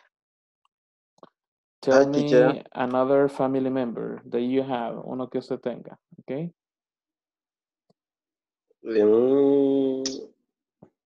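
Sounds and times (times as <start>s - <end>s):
man speaking: 1.8s - 2.6s, 8.9s - 10.2s.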